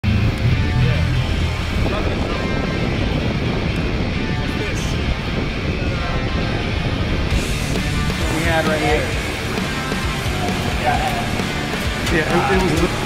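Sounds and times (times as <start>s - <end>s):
background music: 0.0s - 13.0s
skateboard wheels rolling on concrete: 1.7s - 13.0s.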